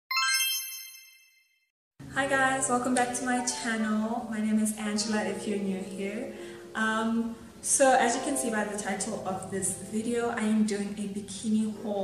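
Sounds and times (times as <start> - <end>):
bright chime: 0.1 - 1.5.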